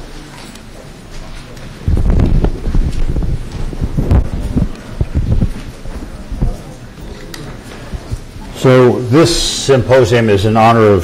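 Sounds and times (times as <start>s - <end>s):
microphone handling rustling: 0.4s - 8.5s.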